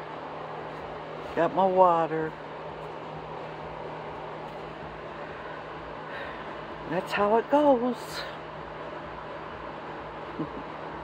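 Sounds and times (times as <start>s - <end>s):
low machine hum: 0.0s - 11.0s.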